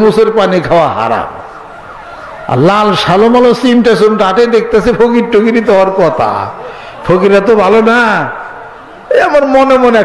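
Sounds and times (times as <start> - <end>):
man preaching through loudspeaker: 0.0 - 1.6, 2.4 - 10.0.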